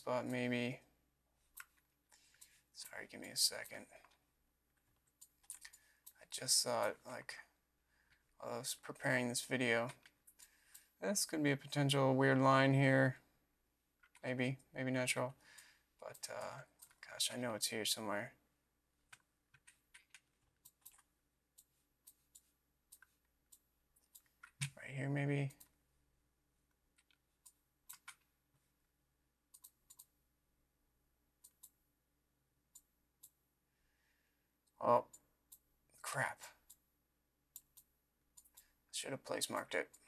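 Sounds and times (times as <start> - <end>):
computer mouse clicking: 5.0 - 6.2, 19.1 - 24.8, 26.9 - 28.3, 29.5 - 30.2, 31.4 - 31.8, 37.5 - 38.7.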